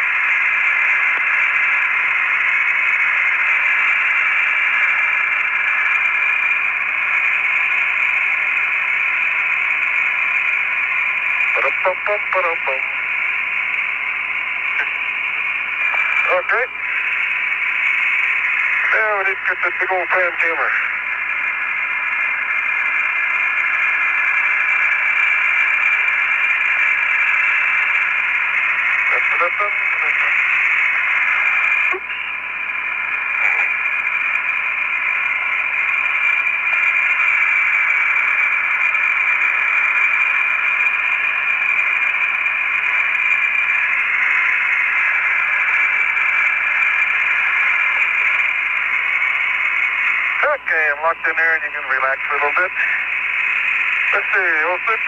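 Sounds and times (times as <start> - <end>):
radio static hiss: 0.0 - 55.0.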